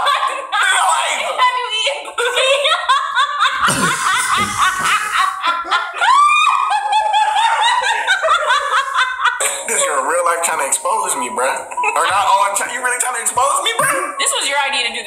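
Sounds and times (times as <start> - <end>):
man and woman laughing: 2.1 - 10.1, 11.6 - 12.6, 13.7 - 14.2.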